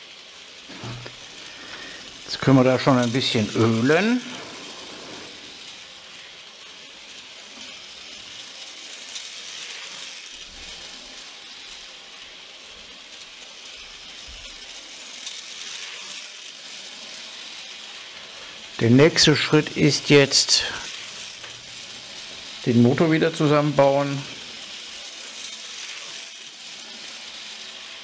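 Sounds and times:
small metal parts clicking: 0.0 - 28.0
steady hiss: 0.0 - 28.0.

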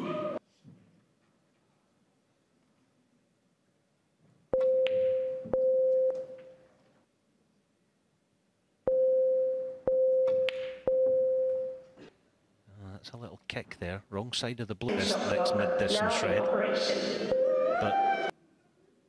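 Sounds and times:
electronic warning beeps: 17.3 - 18.3.

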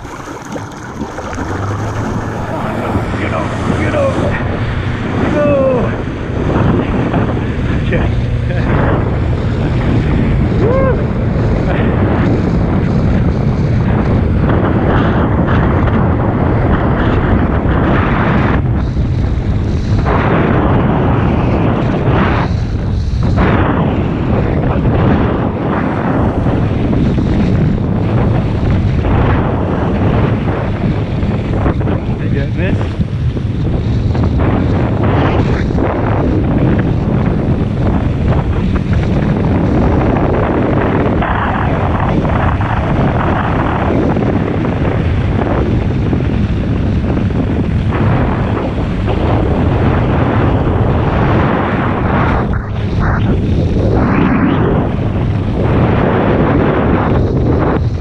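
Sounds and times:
water skis splashing across water: 0.0 - 10.5
wind buffeting microphone: 0.0 - 58.0.

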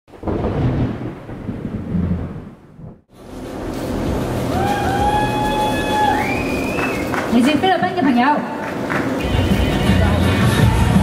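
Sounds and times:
thunder rumbling: 0.1 - 7.8
crowd in a large hall: 4.0 - 11.0
music in a large hall: 8.7 - 11.0.

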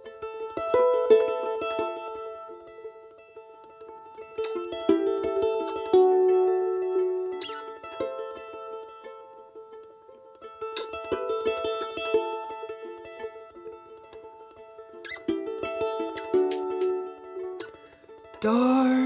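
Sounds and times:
mandolin picking: 0.0 - 19.0.

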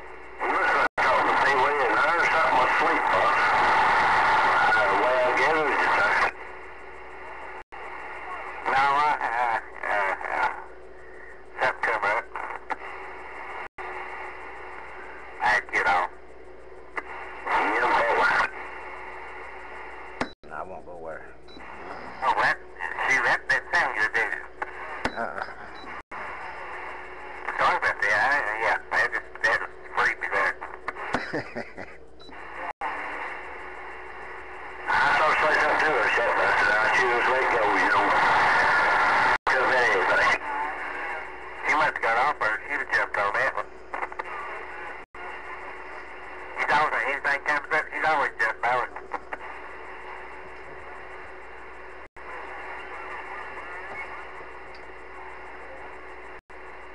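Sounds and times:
garbled radio voices: 0.0 - 56.8
radio static: 0.0 - 56.9.

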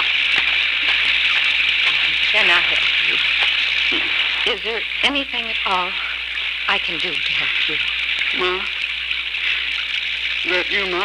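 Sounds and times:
rain sound effect hiss: 0.0 - 11.0.

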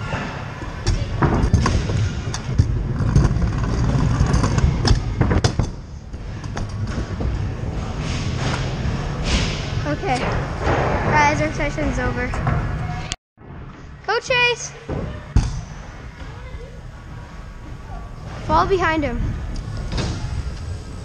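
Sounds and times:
scooter wheels rolling on plywood: 0.7 - 7.8.

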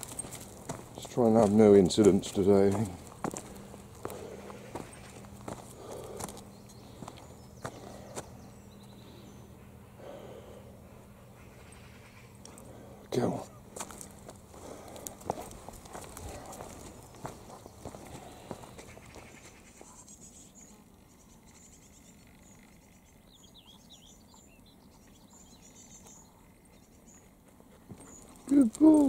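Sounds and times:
footsteps on dirt path: 0.0 - 9.1, 12.4 - 20.0, 25.3 - 29.0.

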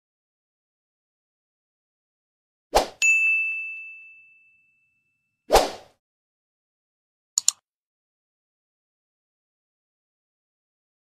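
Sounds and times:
high bell-like ding: 3.0 - 5.4.

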